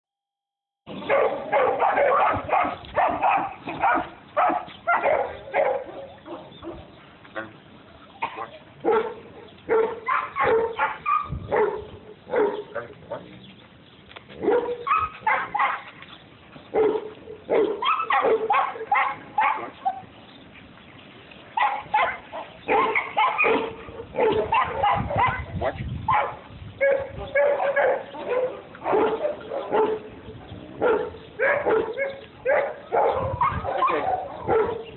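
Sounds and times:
large dog barking: 0:01.0 - 0:07.0, 0:08.2 - 0:13.4, 0:14.4 - 0:16.0, 0:16.7 - 0:20.1, 0:21.6 - 0:34.9.

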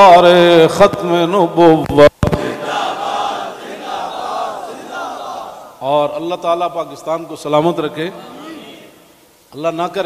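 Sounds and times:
man's amplified voice: 0:00.0 - 0:02.4, 0:05.8 - 0:10.0
crowd chanting in unison: 0:02.3 - 0:05.8, 0:08.2 - 0:09.1.

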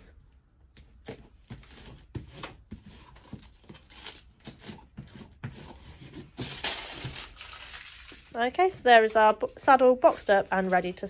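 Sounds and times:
backing paper ripping and scrunching: 0:01.1 - 0:11.0
plastic label sleeve crinkling: 0:06.0 - 0:11.0.

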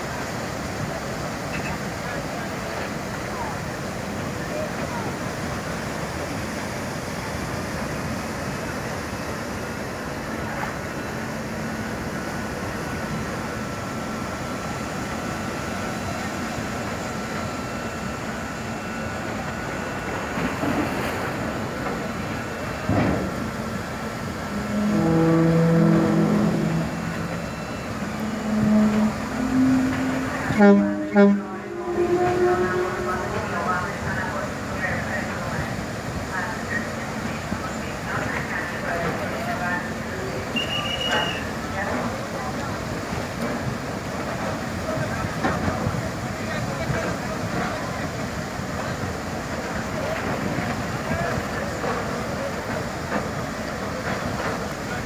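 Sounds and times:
churning water wash: 0:00.0 - 0:55.0
ferry engines rushing: 0:00.0 - 0:55.0
voices: 0:18.7 - 0:55.0.

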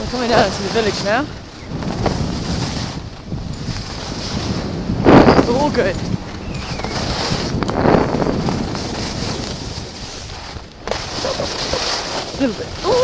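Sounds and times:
skis sliding on snow: 0:00.0 - 0:13.0
wind rushing over microphone: 0:00.0 - 0:13.0.

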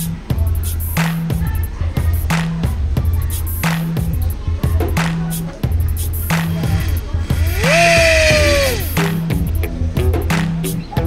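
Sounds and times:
electric motor whining: 0:07.4 - 0:08.9.

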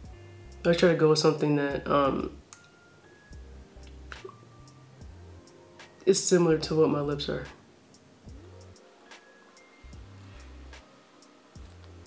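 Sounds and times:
lip smack: 0:03.8 - 0:04.4.

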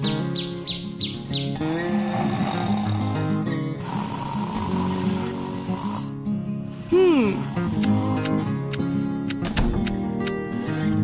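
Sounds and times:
soft background music: 0:00.0 - 0:11.0
cartoon snoring: 0:01.6 - 0:06.2, 0:06.8 - 0:08.6.

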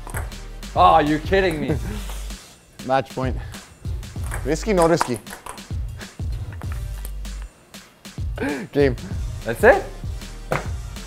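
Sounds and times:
background music with steady beat: 0:00.0 - 0:11.0
ping-pong ball clicking: 0:04.2 - 0:05.7.

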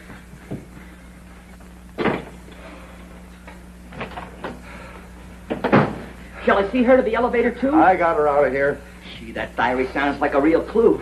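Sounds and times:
door shutting: 0:02.0 - 0:02.4, 0:05.5 - 0:06.1.

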